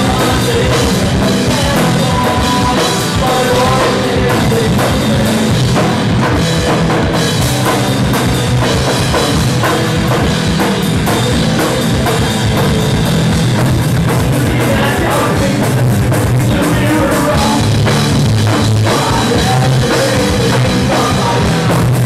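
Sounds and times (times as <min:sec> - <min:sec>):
bass guitar: 0:00.0 - 0:22.0
drum kit beat: 0:00.0 - 0:22.0
electric guitar: 0:00.0 - 0:22.0.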